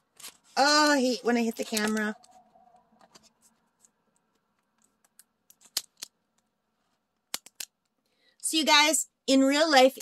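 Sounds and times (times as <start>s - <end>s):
plastic film crinkling: 0.0s - 2.4s.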